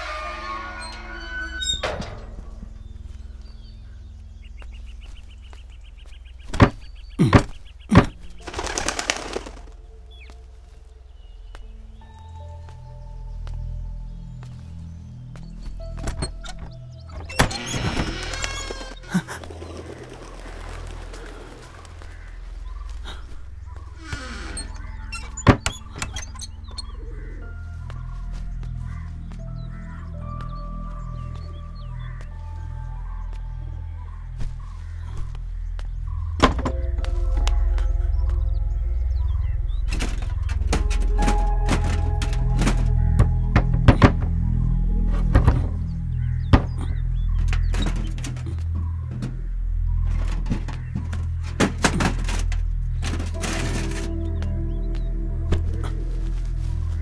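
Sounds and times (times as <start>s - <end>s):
wooden door creaking open: 0.0s - 3.2s, 6.4s - 8.6s, 15.3s - 19.8s, 23.1s - 28.0s, 36.3s - 38.4s, 39.2s - 54.6s
low pulsing film score: 0.0s - 57.0s
objects knocking and thunking: 6.5s - 9.6s, 36.3s - 37.0s, 39.9s - 49.4s, 50.0s - 54.2s.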